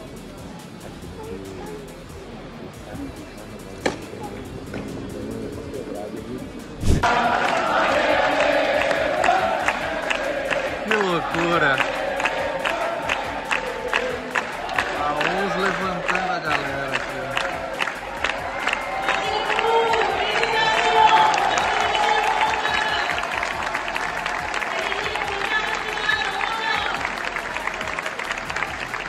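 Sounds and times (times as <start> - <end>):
rhythmic clapping: 0.0 - 29.0
crowd shouting and chanting: 6.8 - 29.0
stadium crowd cheering: 7.0 - 29.0.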